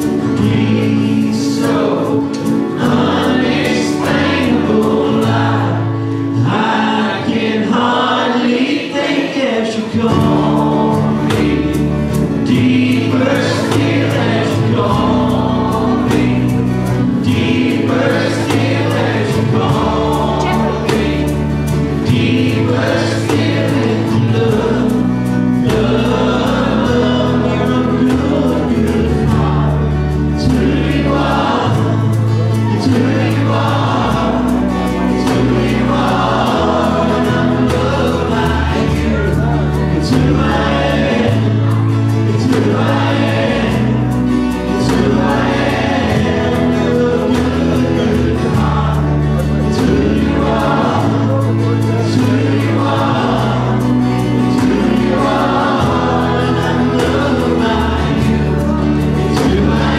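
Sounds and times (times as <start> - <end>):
drum kit beat: 0.0 - 6.0, 10.1 - 59.9
held bass notes: 0.0 - 8.8, 9.9 - 59.9
acoustic guitars: 0.0 - 59.9
gospel worship song: 0.0 - 59.9
group of singers: 0.0 - 59.9.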